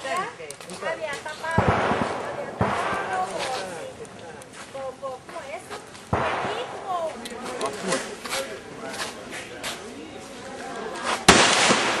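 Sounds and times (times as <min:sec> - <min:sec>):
gunshot with echo: 0:01.6 - 0:03.5, 0:06.1 - 0:07.0, 0:11.3 - 0:12.0.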